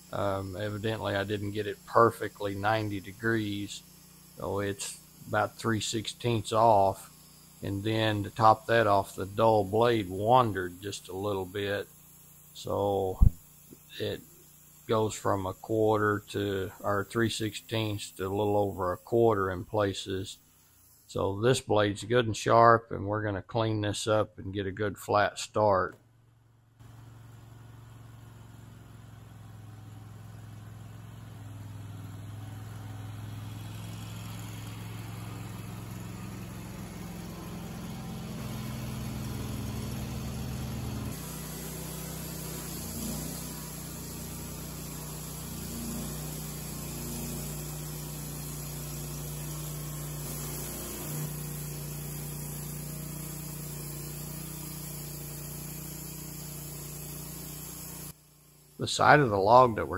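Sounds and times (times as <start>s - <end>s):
band saw cutting wood: 0.0s - 11.8s, 14.9s - 20.1s, 32.4s - 58.2s
sawmill engine droning: 0.0s - 21.4s, 26.8s - 59.9s.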